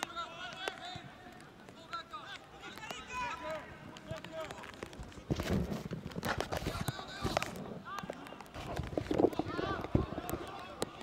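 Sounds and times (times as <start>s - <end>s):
players and spectators shouting: 9.3s - 11.0s.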